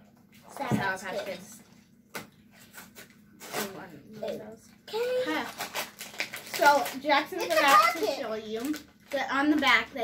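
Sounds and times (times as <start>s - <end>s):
child's voice: 0.5s - 1.6s, 4.2s - 5.6s, 6.5s - 10.0s
plastic package crinkling: 4.9s - 10.0s.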